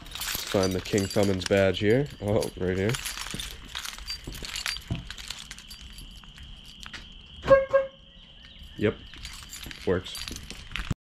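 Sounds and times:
keys jingling: 0.0 - 7.4, 8.4 - 11.0
car horn chirps: 7.4 - 8.1.

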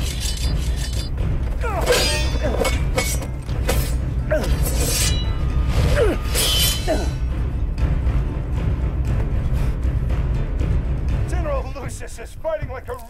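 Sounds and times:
sword blades clashing: 0.0 - 7.2.

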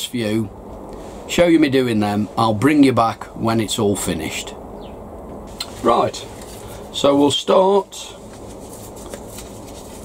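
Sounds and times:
paper seed packet rustling: 8.1 - 10.0.

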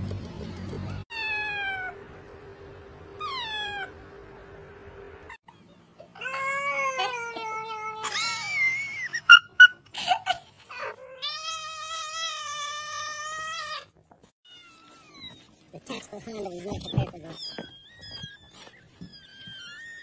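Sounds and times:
cat yowling: 1.1 - 2.0, 3.2 - 4.0, 5.5 - 8.7, 17.3 - 20.0
cats meowing: 1.1 - 2.0, 3.2 - 3.9, 10.7 - 13.9, 14.5 - 15.8, 16.4 - 20.0.

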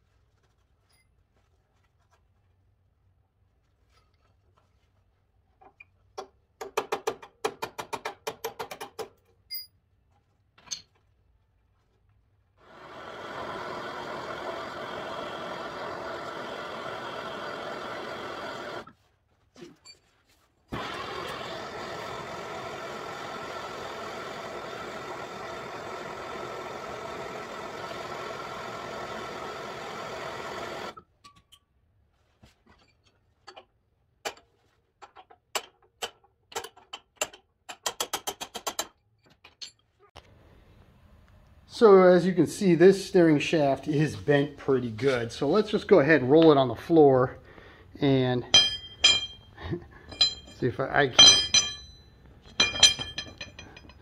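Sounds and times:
gas torch hissing: 12.6 - 18.9, 20.7 - 31.0
torch ignition click: 12.8 - 18.9, 20.7 - 31.0
hammer tapping on metal: 48.5 - 49.5.

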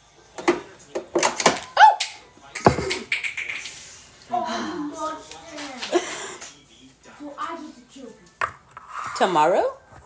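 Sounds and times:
bottles knocking and clattering: 2.6 - 3.2.

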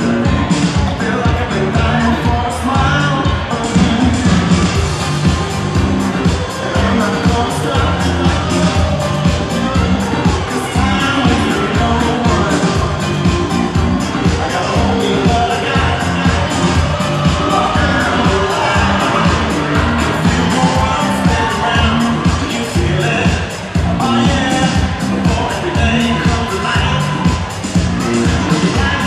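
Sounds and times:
pop dance music over pa: 0.0 - 29.0.

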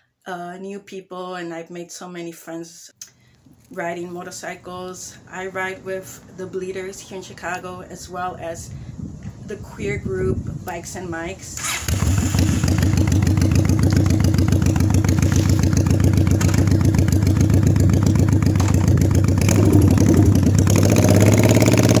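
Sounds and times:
motorcycle engine revving: 11.6 - 22.0
motorcycle engine idling: 11.9 - 22.0.

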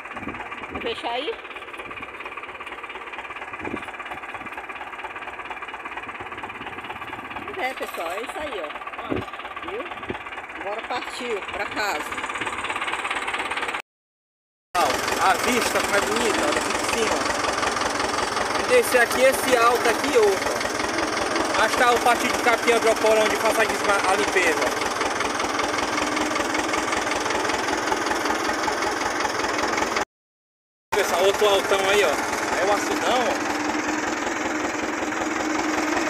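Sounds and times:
tractor engine knocking: 0.0 - 13.8, 14.8 - 30.0, 31.0 - 36.0.

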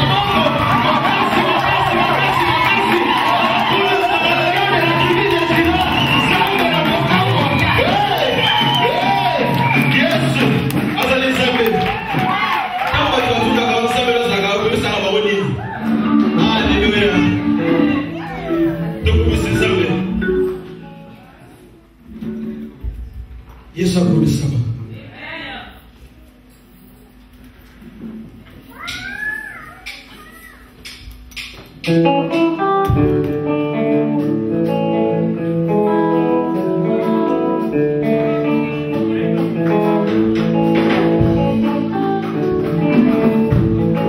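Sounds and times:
audience clapping and shouting: 0.0 - 14.4
live band music with singing: 0.0 - 23.4, 28.7 - 44.0.

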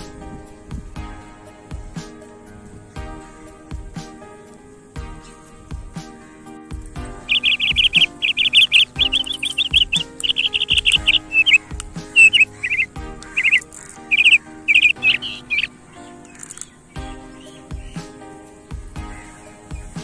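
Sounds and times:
background music: 0.0 - 20.0
bird chirping in trills: 0.0 - 20.0.

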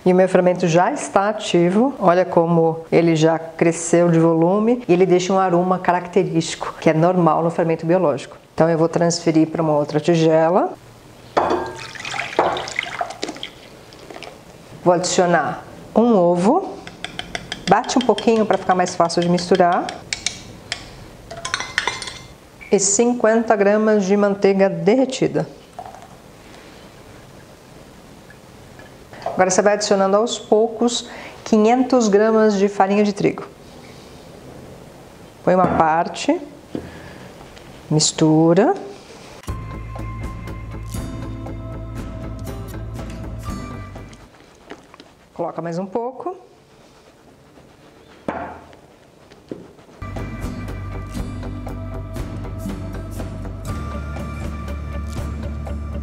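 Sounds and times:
fork clinking against metal cup: 16.8 - 22.3
utensils knocking mixing bowl: 16.8 - 22.3.

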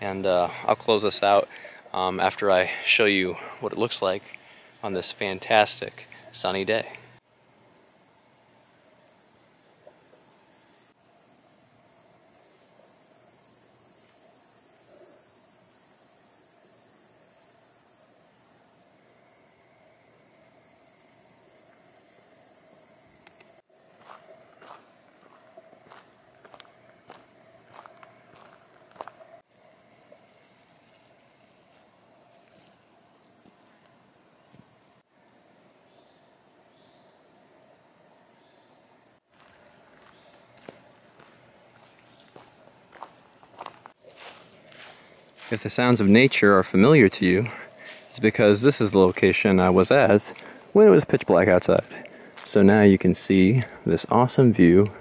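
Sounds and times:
insects droning: 0.0 - 55.0.

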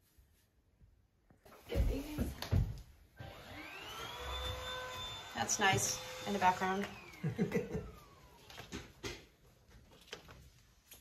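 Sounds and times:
soft footfalls: 1.6 - 3.0
small electric motor whining: 3.2 - 8.4.

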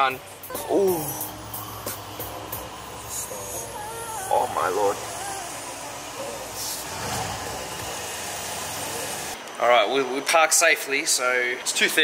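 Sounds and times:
car engine humming: 0.1 - 9.4.

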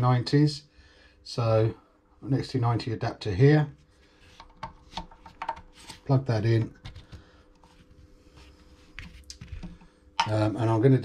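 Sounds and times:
faint steady hum: 0.0 - 11.0
faint handling noise: 3.8 - 10.6.

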